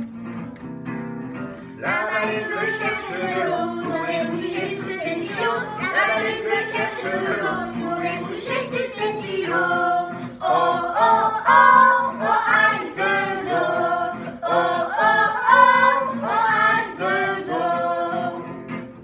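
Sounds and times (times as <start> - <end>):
strummed acoustic guitar: 0.0 - 19.0
man singing: 1.8 - 11.2
children singing in chorus: 1.8 - 18.5.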